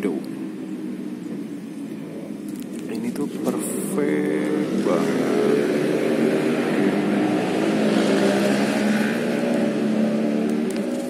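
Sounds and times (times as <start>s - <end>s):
engine running steadily: 0.0s - 11.0s.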